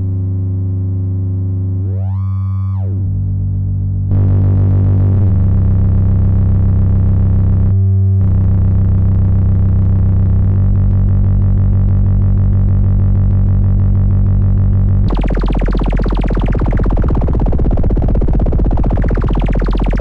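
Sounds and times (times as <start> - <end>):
synthesizer low drone: 0.0 - 20.0.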